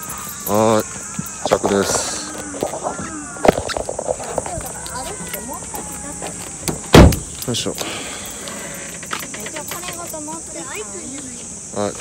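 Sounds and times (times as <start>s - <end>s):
high insect drone: 0.0s - 12.0s
car door slamming: 6.6s - 7.4s.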